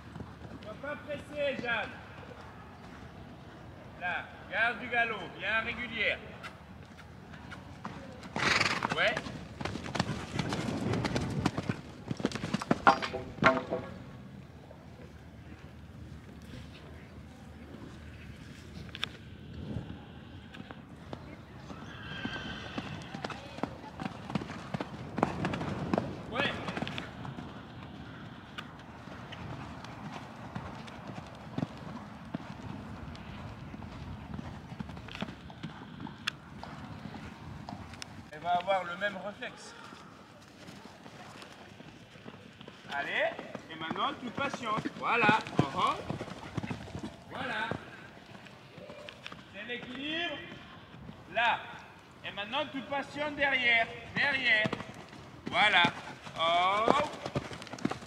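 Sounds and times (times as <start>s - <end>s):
horse hoofbeats cantering on sand: 0.0s - 3.6s, 6.4s - 13.9s, 21.0s - 38.3s, 39.2s - 58.0s.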